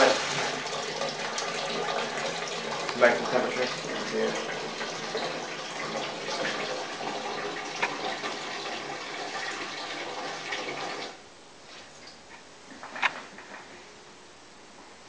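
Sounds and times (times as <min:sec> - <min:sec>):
water rushing through valves: 0:00.0 - 0:11.2.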